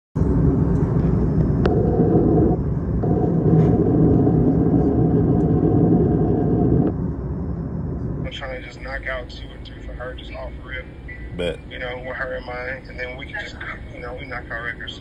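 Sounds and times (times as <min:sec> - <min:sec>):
faint steady hum-tone: 0:00.2 - 0:15.0.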